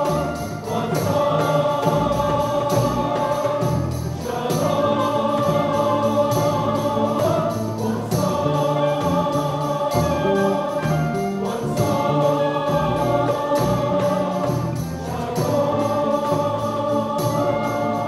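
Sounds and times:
choir singing: 0.0s - 18.0s
orchestra accompanying: 0.0s - 18.0s.

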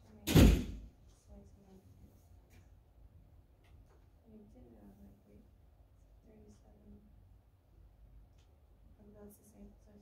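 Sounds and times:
loud thump: 0.3s - 0.8s.

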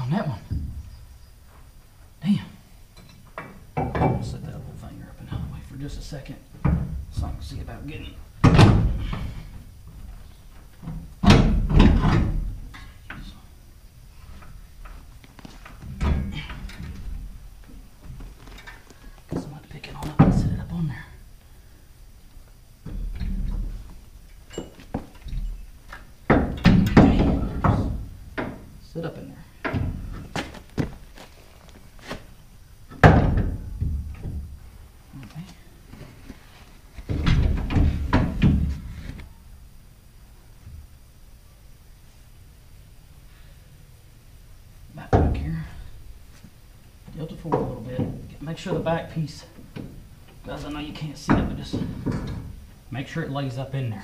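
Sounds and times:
thunks and metal knocks: 0.0s - 1.0s, 3.0s - 5.6s, 6.6s - 7.8s, 8.4s - 13.3s, 14.3s - 20.8s, 22.8s - 28.8s, 29.6s - 31.0s, 32.9s - 34.8s, 37.0s - 38.9s, 47.4s - 48.4s, 49.6s - 52.6s.

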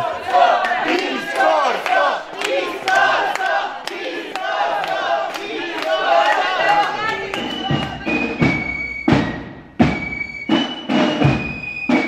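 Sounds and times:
crowd shouting and cheering: 0.0s - 9.4s.

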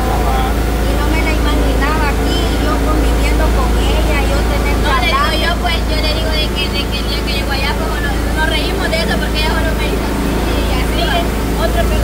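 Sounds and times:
background voices: 0.0s - 12.0s
steady low rumble: 0.0s - 12.0s.

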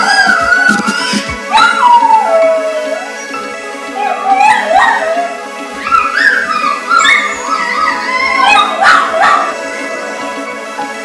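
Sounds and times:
puppy howling and yipping: 0.0s - 3.2s, 4.0s - 9.6s
background music: 0.0s - 11.0s.

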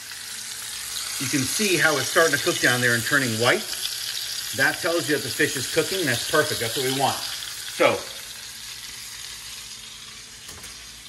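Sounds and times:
fish sizzling in a pan: 0.0s - 11.0s.

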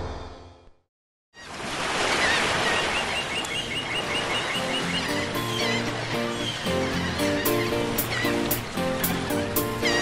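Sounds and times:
song music: 4.6s - 10.0s.

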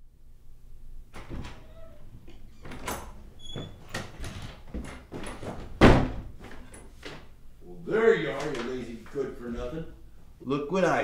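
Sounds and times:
door shutting with a knock: 1.1s - 7.3s.

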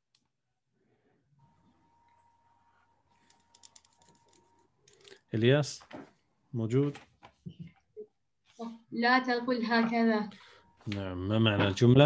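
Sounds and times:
rapid keyboard clicking: 3.2s - 5.2s.

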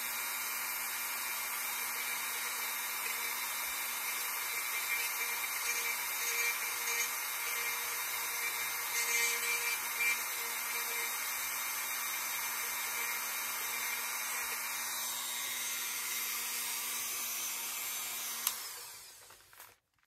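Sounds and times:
rotary tool whining: 0.0s - 19.8s.

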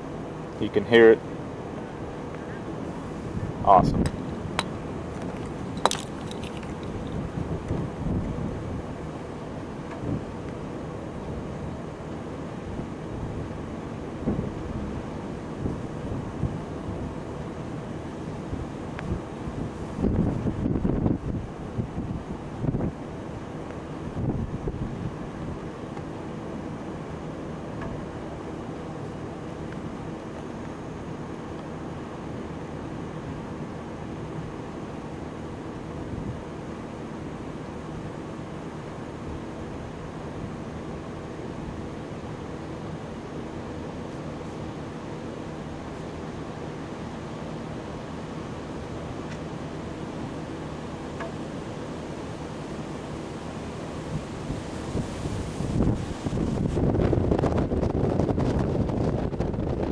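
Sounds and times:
faint steady hum: 0.0s - 59.9s
wind buffeting microphone: 3.2s - 9.0s, 18.5s - 23.0s, 24.1s - 25.6s, 54.1s - 59.9s.

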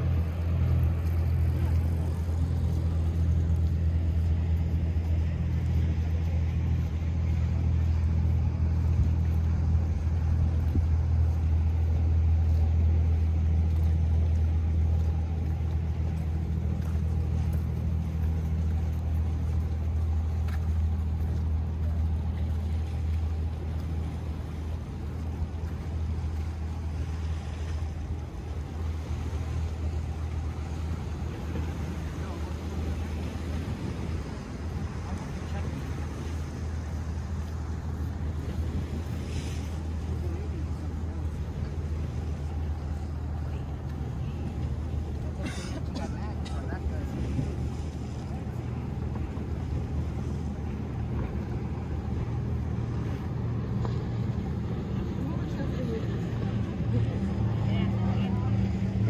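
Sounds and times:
motorboat engine drone: 0.0s - 59.0s.

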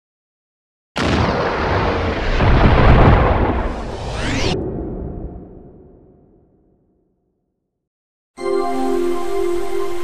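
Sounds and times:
deep rumbling blast: 1.0s - 6.6s.

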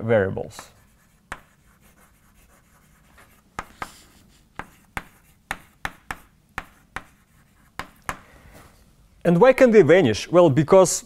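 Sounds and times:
chalk scraping: 0.6s - 8.2s
chalk tapping on chalkboard: 0.8s - 8.3s.

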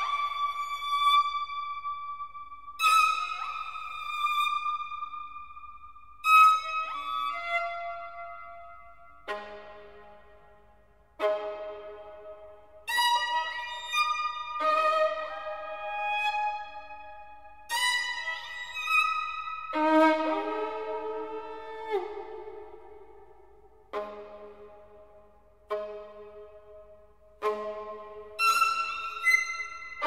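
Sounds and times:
electronic violin: 11.2s - 22.7s, 27.4s - 30.0s.

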